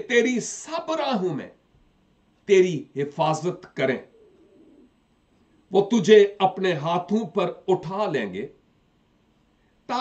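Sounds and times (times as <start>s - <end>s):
man reading aloud: 0.0s - 1.6s, 2.4s - 4.1s, 5.7s - 8.6s.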